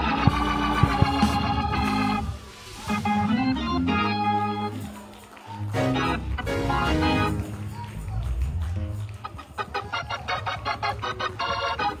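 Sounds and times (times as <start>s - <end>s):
organ staccato chords: 0.0s - 12.0s
steady low bass: 5.8s - 9.2s.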